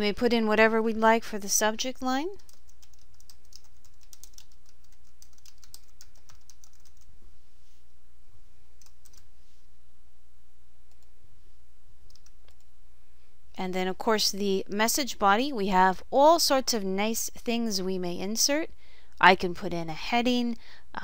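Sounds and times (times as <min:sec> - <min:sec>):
typing on computer keyboard: 0:02.4 - 0:07.1.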